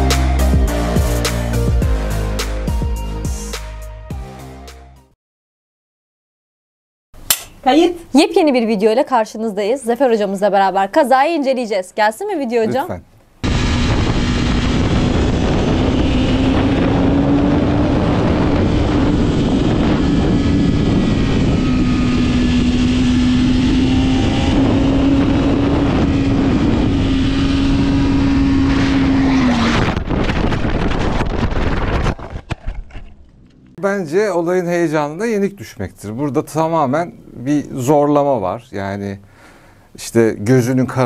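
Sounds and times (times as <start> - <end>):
motorcycle engine at high revs: 13.4 - 31.5
wind noise over helmet: 13.4 - 33.1.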